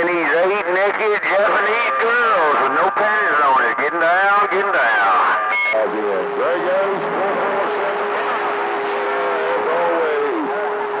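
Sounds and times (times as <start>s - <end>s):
garbled radio voices: 0.0s - 10.9s.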